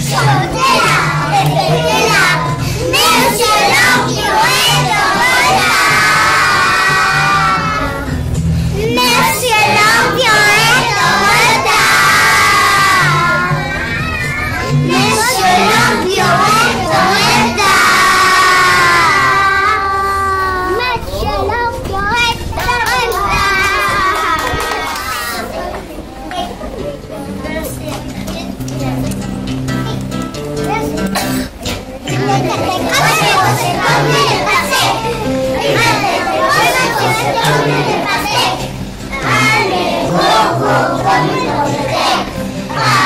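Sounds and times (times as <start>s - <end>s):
music playing: 0.0s - 20.9s, 25.9s - 43.0s
children singing and shouting: 0.0s - 43.0s.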